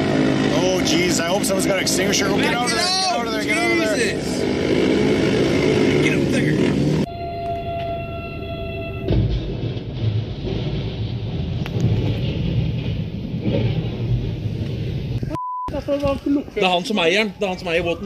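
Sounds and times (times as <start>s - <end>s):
low rumble with noise: 8.6s - 16.4s
short pure beep: 15.3s - 15.8s.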